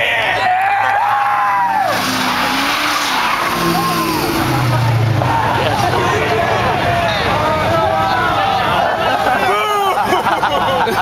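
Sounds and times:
tires squealing: 0.1s - 10.1s
car engine revving: 1.3s - 8.8s.

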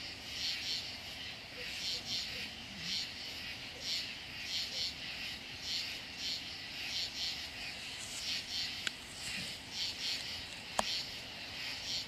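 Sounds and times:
night insects calling: 0.0s - 12.0s.

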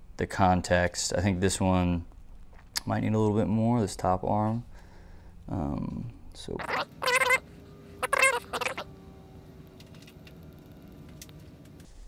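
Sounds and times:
high-pitched animal call: 6.6s - 8.9s.

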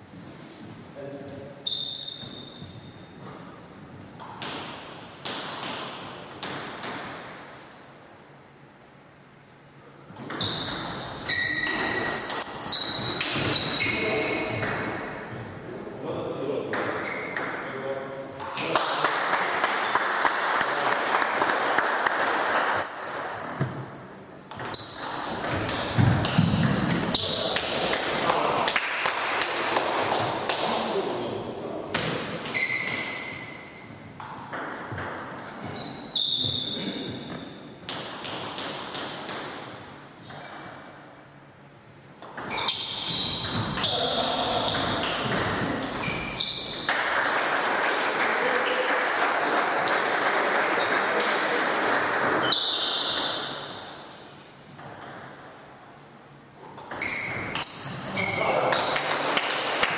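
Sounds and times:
shoes squeaking on floor: 0.1s - 4.0s, 4.8s - 5.2s, 10.3s - 14.6s, 22.8s - 27.6s, 32.4s - 34.1s, 35.4s - 37.6s, 42.5s - 46.9s, 52.4s - 53.8s, 56.9s - 58.6s.

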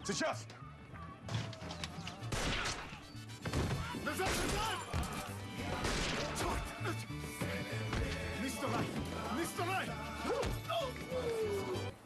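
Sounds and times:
dramatic film music: 0.0s - 12.0s
volley of gunshots: 2.3s - 4.8s, 5.7s - 6.6s.

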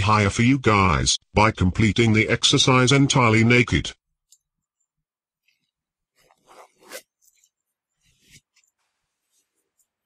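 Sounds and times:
clothing rustling: 4.2s - 10.0s.

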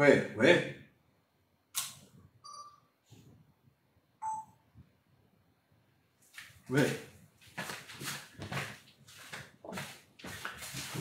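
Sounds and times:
brief electronic beep: 2.4s - 2.9s, 4.2s - 4.6s.

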